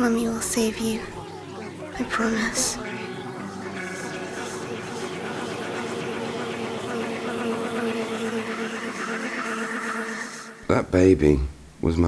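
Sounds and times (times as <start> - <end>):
dark ambient buzzing drone: 0.0 - 11.4.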